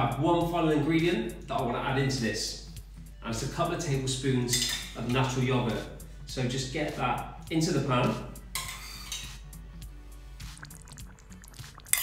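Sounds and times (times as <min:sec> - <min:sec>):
quiet background music: 0:00.0 - 0:12.0
metal spoon scraping a bowl: 0:08.6 - 0:09.3.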